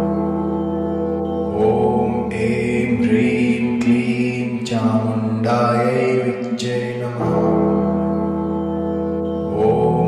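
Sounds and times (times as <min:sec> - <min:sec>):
instrumental drone: 0:00.0 - 0:10.0
person chanting slowly: 0:01.5 - 0:08.0, 0:09.5 - 0:10.0.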